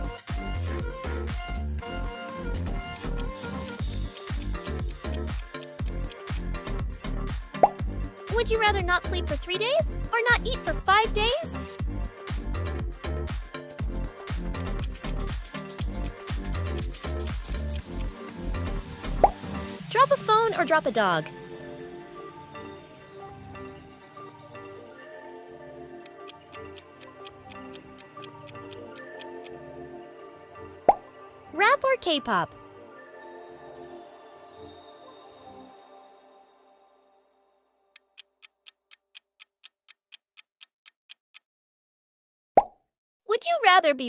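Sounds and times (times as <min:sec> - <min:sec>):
countdown timer ticking: 0:02.9 - 0:06.4, 0:07.7 - 0:11.8, 0:14.5 - 0:18.2, 0:25.9 - 0:29.6, 0:38.0 - 0:41.4
rising pop sound effect: 0:07.6 - 0:07.8, 0:19.2 - 0:19.4, 0:42.6 - 0:42.8
electronic music with beat: 0:12.3 - 0:18.6.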